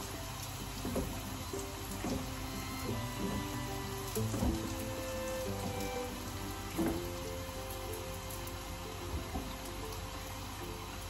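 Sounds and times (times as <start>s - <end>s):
background music: 0.0s - 11.0s
dough sizzling in hot oil: 0.0s - 11.0s.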